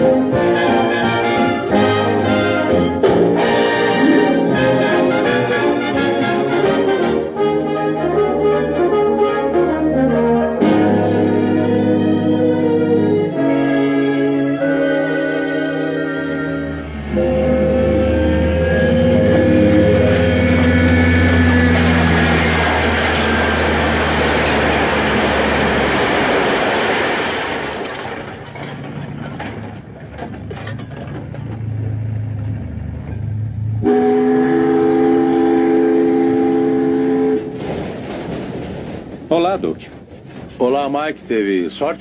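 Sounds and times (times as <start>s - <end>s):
low horns sounding chords: 0.0s - 26.0s, 33.5s - 37.6s
rushing rumbling noise: 15.4s - 33.9s, 36.1s - 42.0s
clatter: 22.1s - 33.3s, 37.5s - 40.7s.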